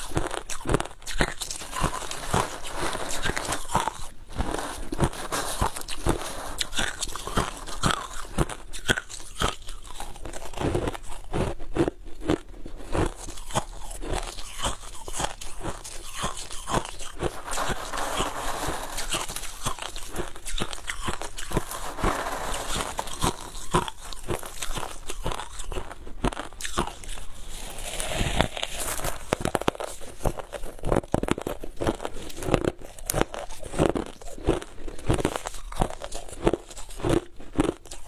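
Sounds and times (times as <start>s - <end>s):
crushed ice crunching: 0.0s - 11.0s, 13.0s - 38.0s.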